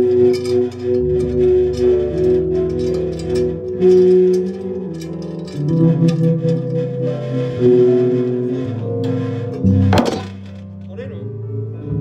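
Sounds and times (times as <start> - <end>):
jazz piano bass and drums: 0.0 - 12.0.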